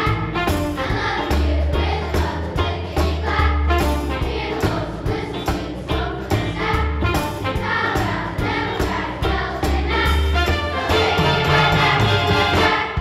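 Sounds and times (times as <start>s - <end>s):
children's choir singing: 0.0s - 13.0s
instrumental accompaniment with beat: 0.0s - 13.0s.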